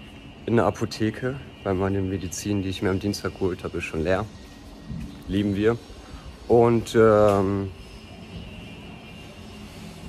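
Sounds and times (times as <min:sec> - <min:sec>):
city street hum: 0:00.0 - 0:10.0
faint high whine: 0:00.0 - 0:10.0.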